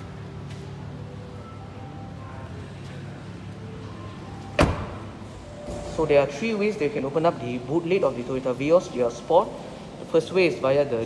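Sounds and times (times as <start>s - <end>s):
car door shutting thud: 4.6s - 5.2s.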